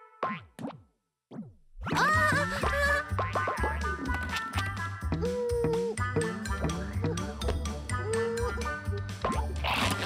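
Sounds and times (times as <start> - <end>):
upbeat children's music: 1.9 - 10.0.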